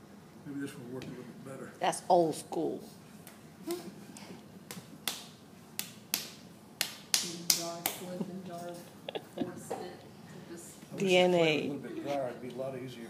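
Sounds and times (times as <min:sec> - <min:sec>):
hands slapping wet clay: 0:04.7 - 0:08.1.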